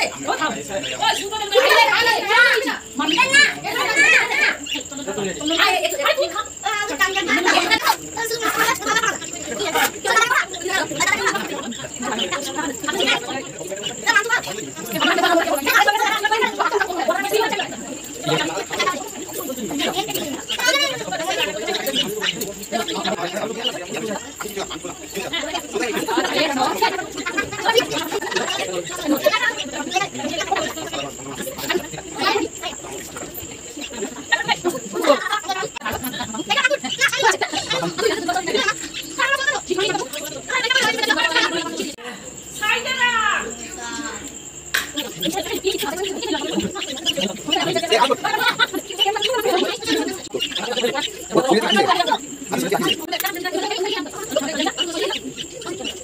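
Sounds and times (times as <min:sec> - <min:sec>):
quiet voices of people: 0:00.0 - 0:56.0.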